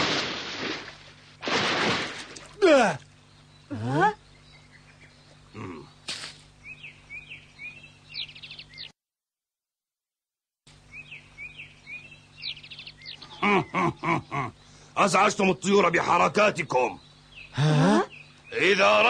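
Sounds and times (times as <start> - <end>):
birds chirping: 2.4 - 8.9, 10.7 - 19.0.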